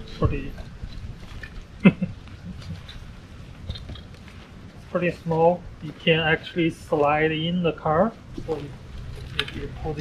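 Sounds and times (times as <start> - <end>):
clicks and knocks of frame handling: 9.0 - 9.7.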